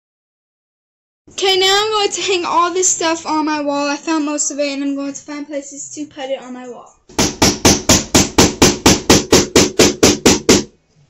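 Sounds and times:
hammer striking a nail: 0:07.1 - 0:10.7.

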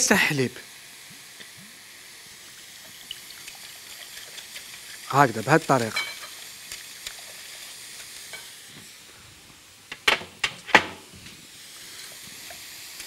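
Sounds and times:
food sizzling in pan: 0:00.0 - 0:13.0
whisk beating eggs in bowl: 0:03.2 - 0:08.4
whisk clinking against glass: 0:05.2 - 0:06.4.

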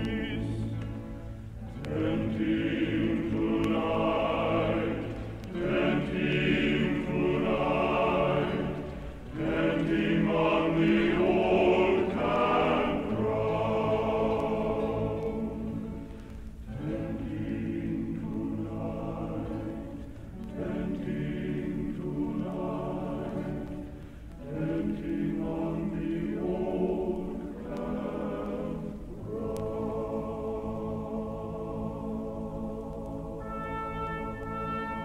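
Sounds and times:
choir singing held chords: 0:00.0 - 0:35.0.

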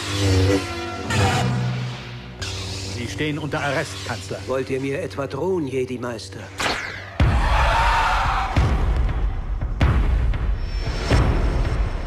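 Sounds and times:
dramatic trailer music: 0:00.0 - 0:12.0.

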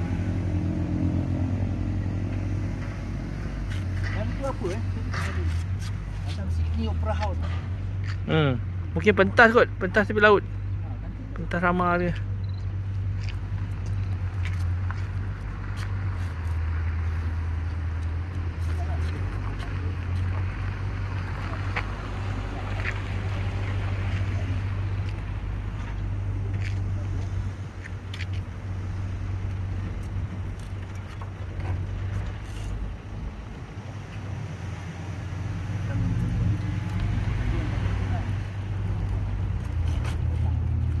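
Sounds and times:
low outdoor rumble: 0:00.0 - 0:41.0.

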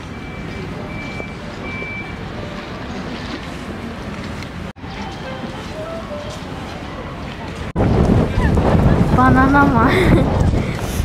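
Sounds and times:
wind buffeting microphone: 0:07.4 - 0:11.0.

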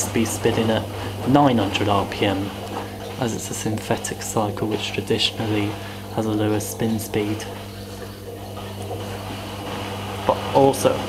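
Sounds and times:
washing machine drain pump humming: 0:00.0 - 0:11.0.

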